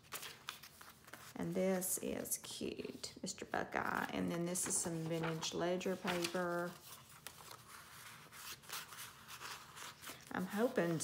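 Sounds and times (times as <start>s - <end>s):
paper pages rustling: 0.0s - 3.0s, 4.4s - 11.0s.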